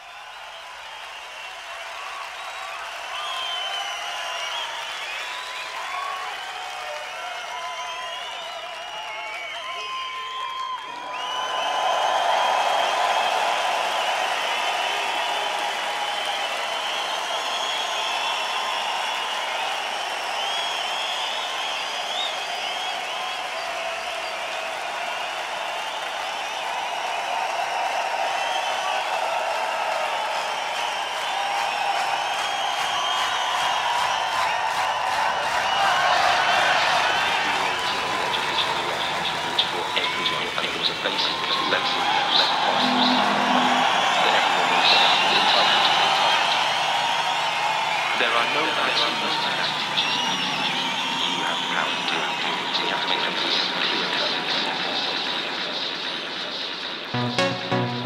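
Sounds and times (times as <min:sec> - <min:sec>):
crowd cheering and whistling: 0:00.0 - 0:58.0.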